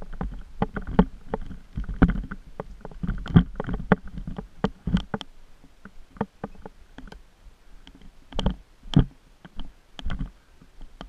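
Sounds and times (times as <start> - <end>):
mountain bike rattling on dirt trail: 0.0 - 5.2.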